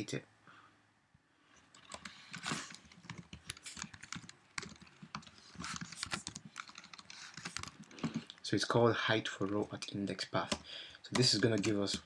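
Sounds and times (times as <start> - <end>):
computer keyboard typing: 1.7 - 8.4, 9.4 - 12.0.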